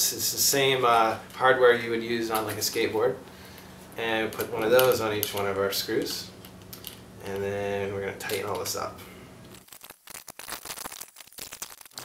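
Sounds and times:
metal hardware clicking and rattling: 0:04.3 - 0:07.0.

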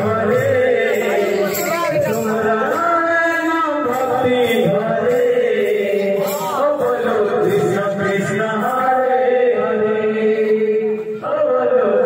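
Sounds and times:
men chanting together: 0:00.0 - 0:12.0.

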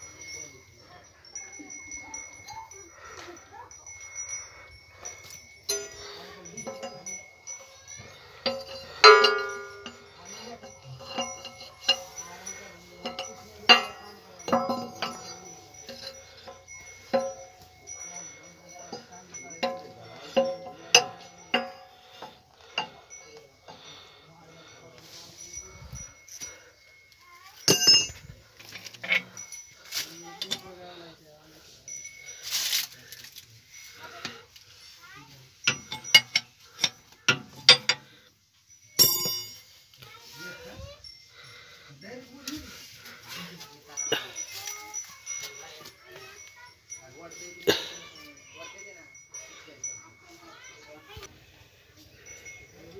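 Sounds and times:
wrench clinking on metal bolt: 0:08.4 - 0:17.5, 0:27.6 - 0:28.2, 0:35.6 - 0:38.1, 0:39.0 - 0:39.7.

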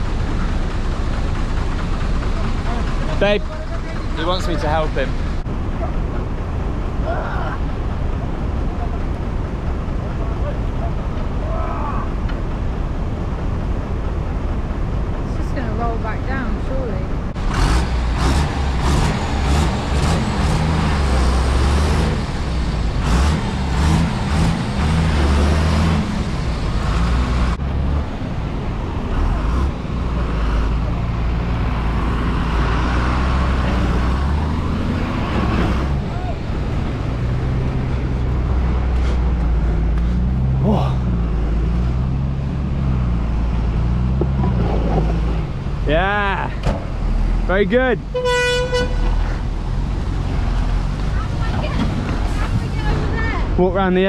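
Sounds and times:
bus engine under load: 0:00.0 - 0:54.0
bus horn: 0:48.1 - 0:49.3.

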